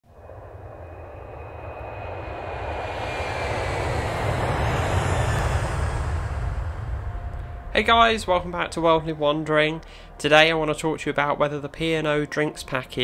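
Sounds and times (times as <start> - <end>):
wind: 0.0 - 11.1
motorboat engine drone: 0.1 - 10.2.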